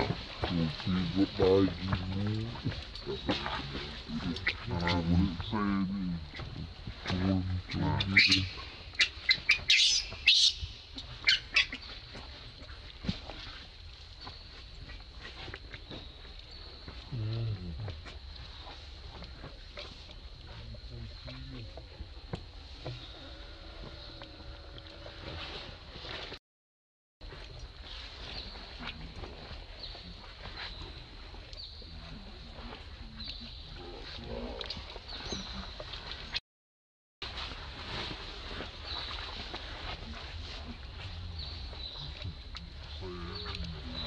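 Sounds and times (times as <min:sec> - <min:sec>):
low grunt-like sounds: 0:00.0 - 0:08.4, 0:17.1 - 0:18.1, 0:31.8 - 0:35.8, 0:40.0 - 0:44.0
insect chirps: 0:00.0 - 0:25.2.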